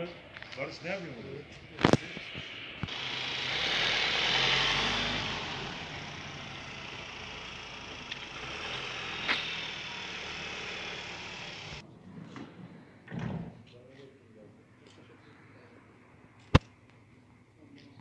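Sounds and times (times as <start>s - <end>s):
traffic hum: 0.0s - 12.4s
car passing: 1.8s - 11.8s.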